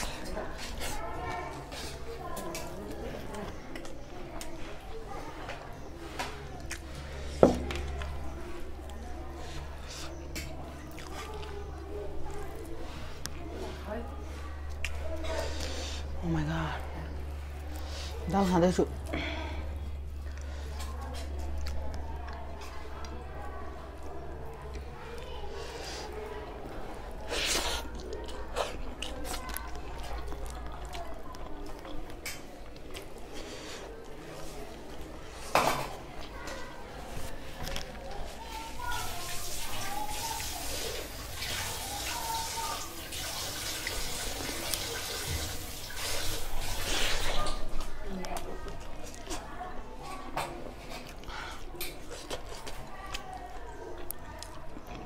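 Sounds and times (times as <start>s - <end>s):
chewing sounds: 0.0s - 16.2s, 18.8s - 55.0s
wet squishing of rice by hand: 36.2s - 49.8s.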